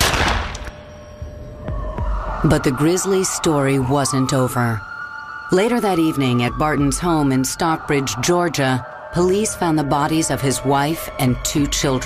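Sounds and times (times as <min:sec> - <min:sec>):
pistol shot: 0:00.0 - 0:00.8
low steady music tone: 0:00.3 - 0:12.0.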